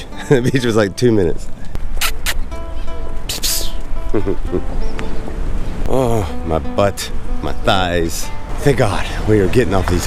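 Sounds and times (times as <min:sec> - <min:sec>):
music with sustained notes: 0:00.0 - 0:01.8, 0:02.4 - 0:09.7.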